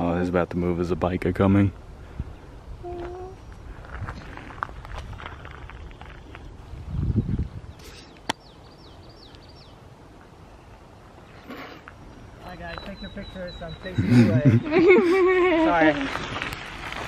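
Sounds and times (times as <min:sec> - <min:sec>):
bird chirping: 0:07.0 - 0:14.9.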